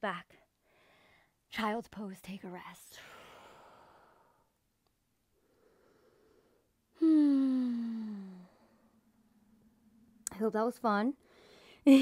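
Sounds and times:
woman sighing: 6.9 - 8.9.

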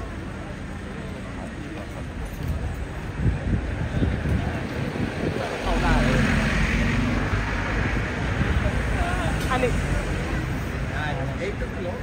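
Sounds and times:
crowd chattering: 0.0 - 12.0
low rumble of road traffic: 0.0 - 12.0.

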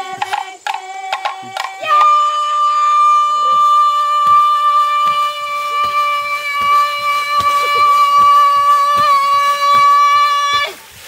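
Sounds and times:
voices singing a high note: 0.0 - 11.0
faint thuds: 3.4 - 10.8.

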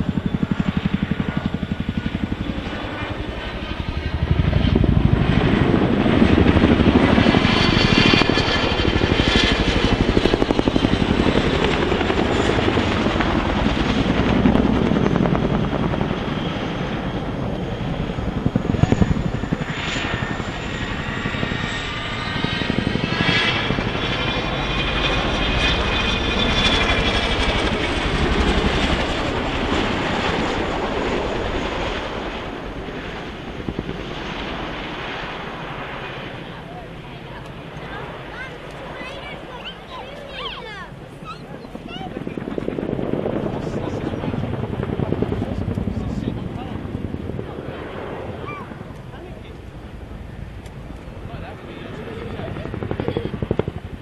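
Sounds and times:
turbine engine whine: 0.0 - 54.0.

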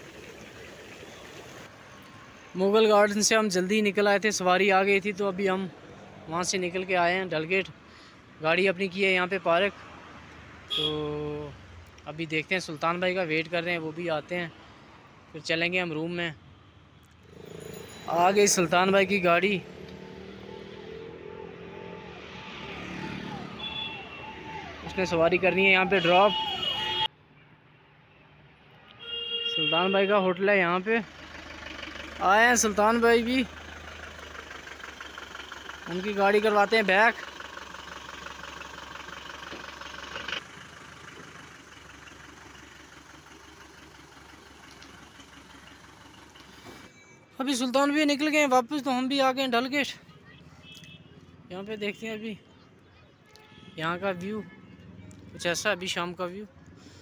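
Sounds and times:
diesel van engine idling: 0.0 - 1.7, 30.8 - 46.9
vehicle engines passing: 0.0 - 29.0, 30.5 - 57.0.

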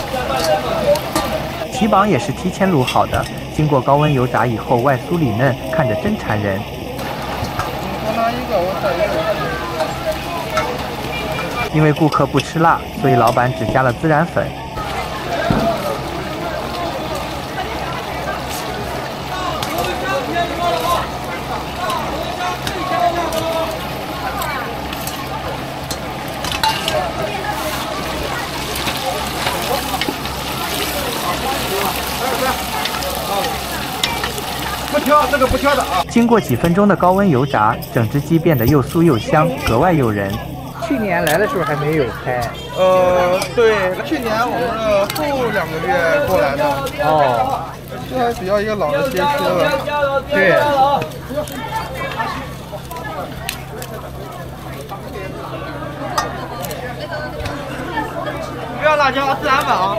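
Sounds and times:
chicken sizzling in hot oil: 0.0 - 59.9
people talking: 0.0 - 59.9.

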